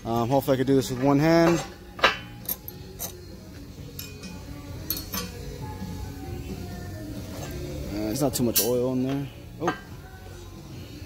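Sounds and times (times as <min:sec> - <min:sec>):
light metallic clinks: 0:01.5 - 0:05.4.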